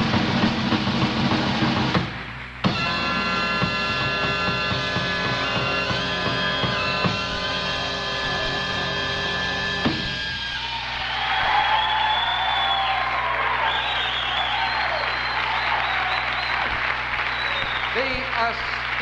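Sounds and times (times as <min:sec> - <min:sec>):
big band final chord: 0:00.0 - 0:10.4
audience applauding and cheering: 0:01.1 - 0:19.0.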